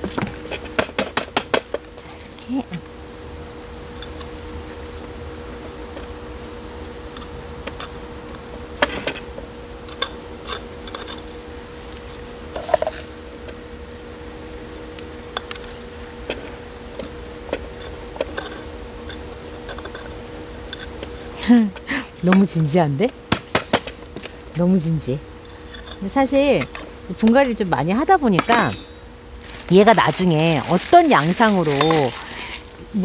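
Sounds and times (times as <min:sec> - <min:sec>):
faint steady hum: 0:00.0 - 0:33.0.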